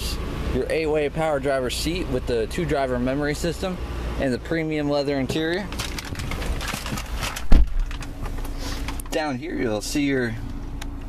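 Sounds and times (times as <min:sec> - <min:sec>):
loud low thump: 0:07.5 - 0:07.9.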